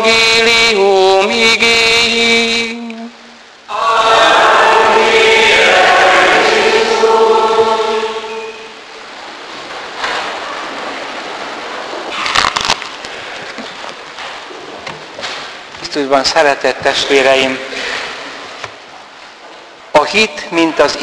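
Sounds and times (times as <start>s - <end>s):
room noise: 0.0s - 21.0s
congregation chanting: 3.7s - 8.8s.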